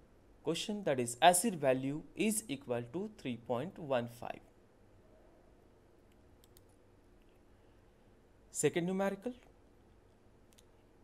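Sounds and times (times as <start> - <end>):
faint mouse clicks: 6.0 - 7.5, 9.6 - 10.9.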